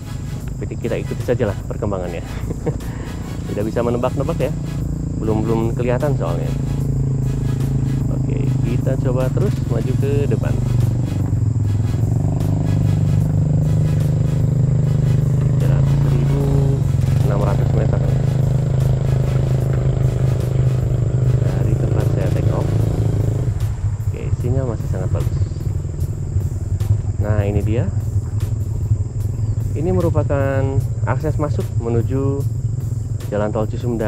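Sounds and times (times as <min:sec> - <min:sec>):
engine running: 0:00.0 - 0:34.0.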